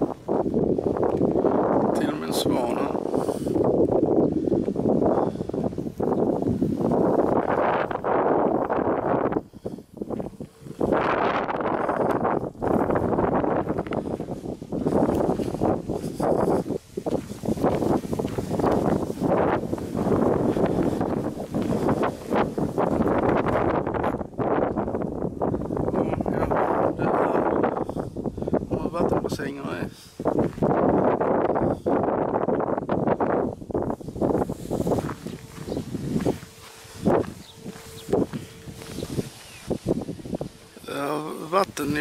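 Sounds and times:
wind buffeting microphone: 0.0 - 42.0.

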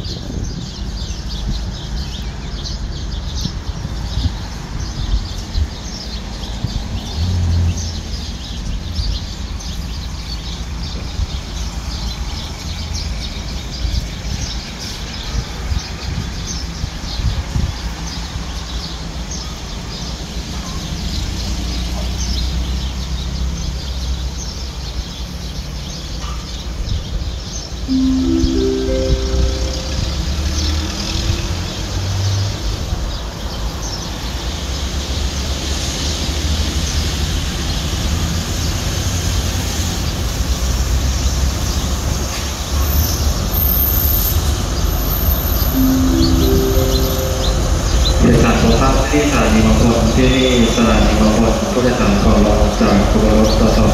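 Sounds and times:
rising four-tone signal: 27.9 - 30.8, 45.8 - 50.1.

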